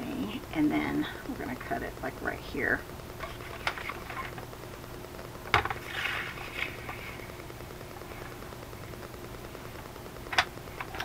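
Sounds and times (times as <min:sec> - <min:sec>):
paper being handled: 0:05.8 - 0:07.2
paper rustling swish: 0:05.8 - 0:07.2.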